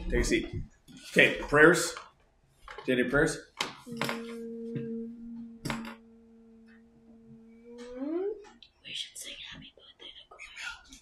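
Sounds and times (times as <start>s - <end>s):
person humming: 3.9s - 8.6s
whispered speech: 7.8s - 11.0s.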